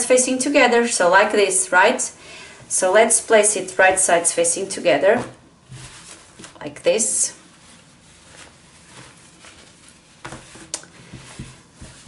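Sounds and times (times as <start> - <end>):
soft brushing sounds: 2.8 - 12.0
fabric rustling: 3.2 - 12.0.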